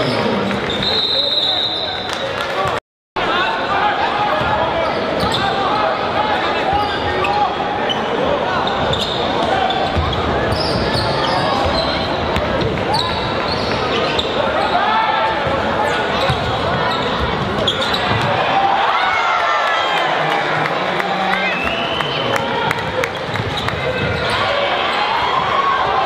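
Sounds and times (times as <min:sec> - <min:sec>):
spectators chattering: 0:00.0 - 0:26.0.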